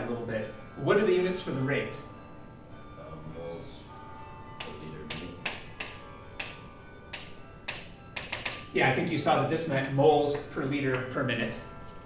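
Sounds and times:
chalk tapping and scraping: 4.6s - 9.1s.

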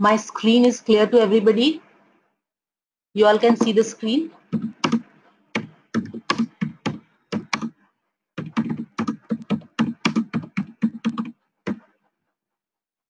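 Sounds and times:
computer keyboard typing: 4.5s - 7.8s, 8.4s - 11.8s.

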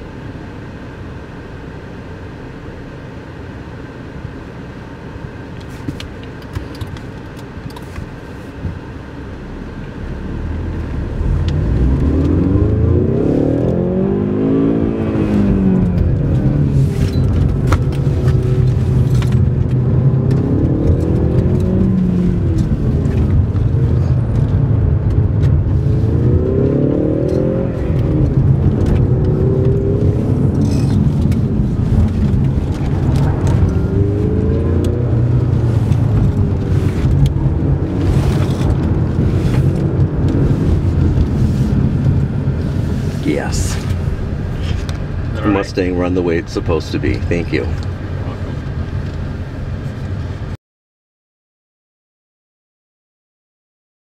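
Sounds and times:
low rumble: 8.1s - 50.6s
car engine revving: 9.2s - 50.5s.

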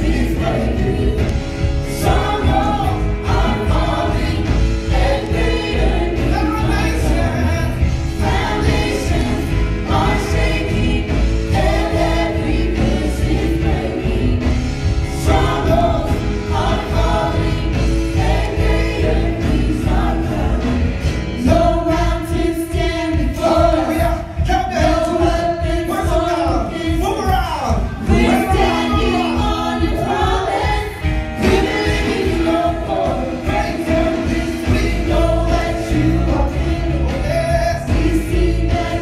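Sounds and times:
group of backing singers: 0.0s - 39.0s
instrumental accompaniment with bass: 0.0s - 39.0s.

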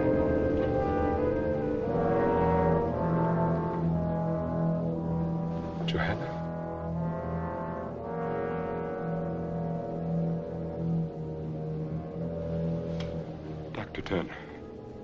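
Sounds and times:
orchestral music with slow chords: 0.0s - 15.0s.

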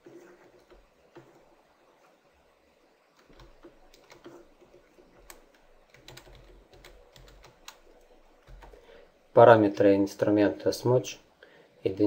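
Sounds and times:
computer keys clicking: 3.2s - 8.8s.

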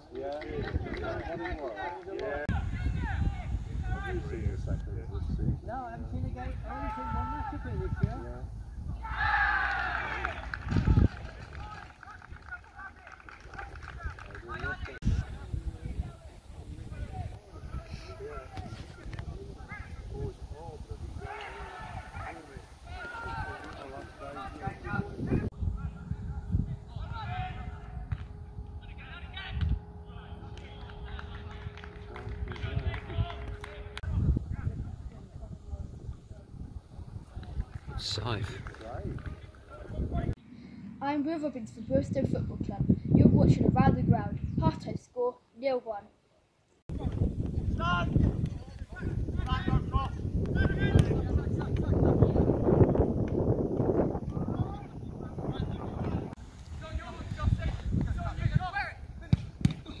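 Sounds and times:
wind rumble on microphone: 0.4s - 1.6s, 2.4s - 12.7s, 13.5s - 29.9s, 30.8s - 40.4s, 41.5s - 45.1s, 46.9s - 60.0s
players shouting: 9.0s - 10.6s, 21.2s - 24.8s.

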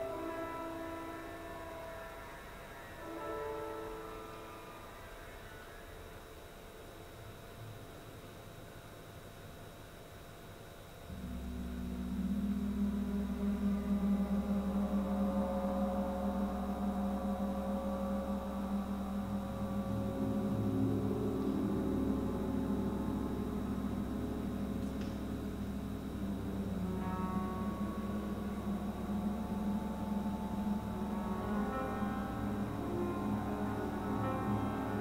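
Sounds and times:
gongs humming: 0.0s - 7.2s, 11.1s - 35.0s.

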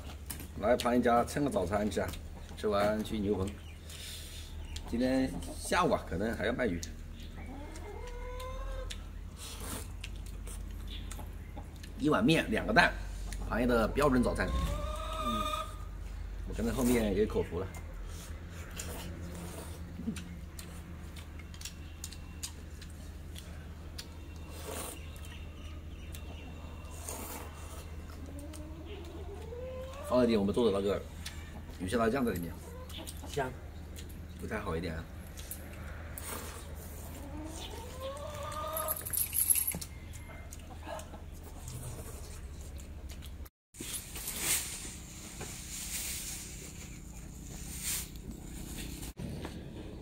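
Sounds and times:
chicken calling: 7.2s - 9.7s, 13.0s - 16.2s, 23.4s - 33.4s, 35.8s - 39.1s.

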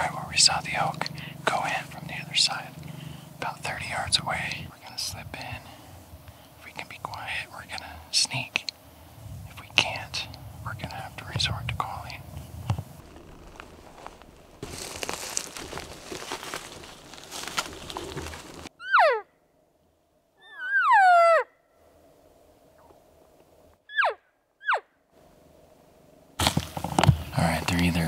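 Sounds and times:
rustling from walking through brush: 9.9s - 18.7s, 26.4s - 28.0s.

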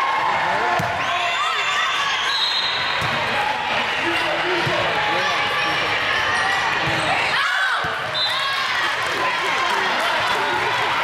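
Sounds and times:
spectators' voices: 0.0s - 11.0s.

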